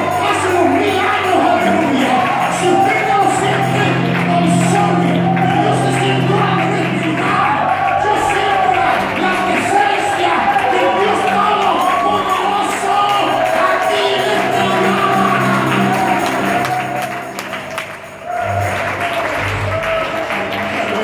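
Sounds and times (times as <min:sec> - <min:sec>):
band with steady bass line: 0:00.0 - 0:10.5
voices singing worship music: 0:00.0 - 0:18.4.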